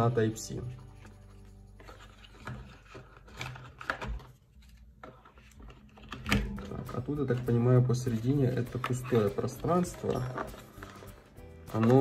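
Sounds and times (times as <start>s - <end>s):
soft background music: 0.0s - 12.0s
knocks and rustles of handling: 1.0s - 12.0s.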